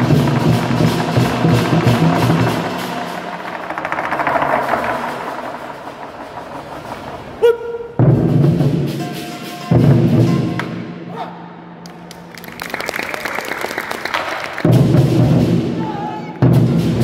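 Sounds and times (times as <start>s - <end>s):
fast driving drumming: 0.0s - 7.4s.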